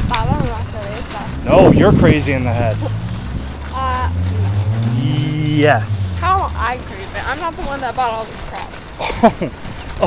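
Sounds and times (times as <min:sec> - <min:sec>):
car engine running: 0:00.0 - 0:08.7.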